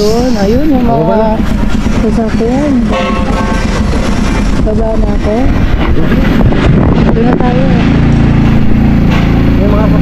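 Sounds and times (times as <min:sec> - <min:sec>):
wind rumbling on microphone: 0:00.0 - 0:09.1
motorcycle engine running: 0:00.0 - 0:10.0.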